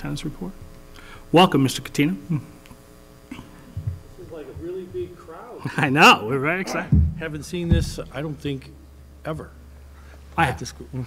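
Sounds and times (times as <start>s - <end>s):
electrical mains hum: 0.0s - 11.0s
short low thump: 6.8s - 8.2s.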